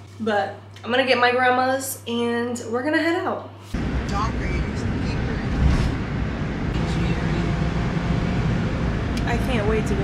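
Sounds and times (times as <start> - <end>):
road rumble: 3.8 - 10.0.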